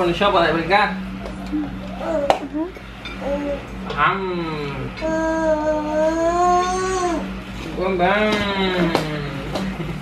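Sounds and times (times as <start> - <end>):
soft voices: 1.3 - 7.3.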